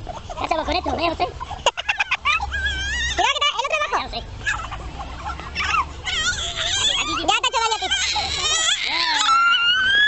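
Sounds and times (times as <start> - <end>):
child whimpering and crying: 5.6 - 10.0.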